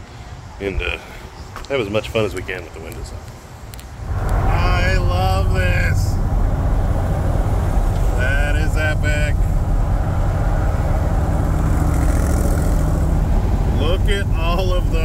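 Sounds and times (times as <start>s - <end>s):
car engine drone at speed: 4.0s - 15.0s.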